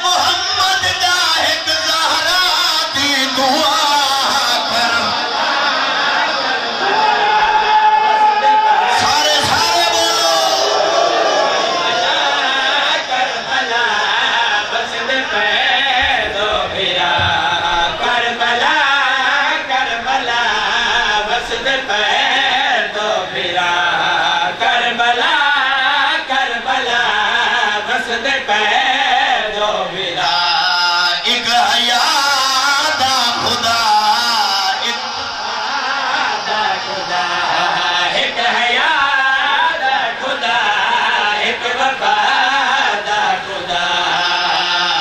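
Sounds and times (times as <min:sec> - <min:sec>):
men chanting over loudspeakers: 0:00.0 - 0:45.0.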